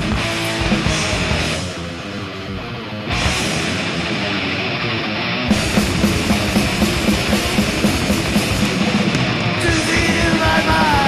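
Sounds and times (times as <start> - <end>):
distorted electric guitars: 0.0 - 11.0
drum kit hammering: 5.5 - 11.0.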